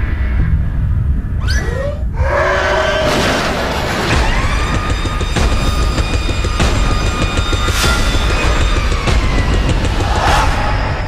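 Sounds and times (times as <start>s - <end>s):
shrill creature screech: 1.4s - 3.3s.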